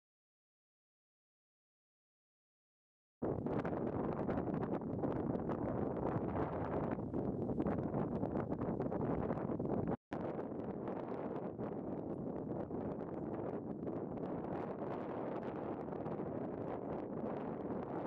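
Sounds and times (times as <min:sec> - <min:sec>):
wind buffeting microphone: 0:03.2 - 0:18.0.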